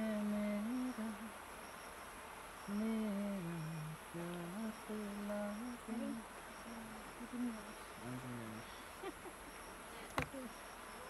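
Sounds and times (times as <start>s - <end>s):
person humming a slow tune: 0.0s - 1.3s, 2.7s - 8.6s.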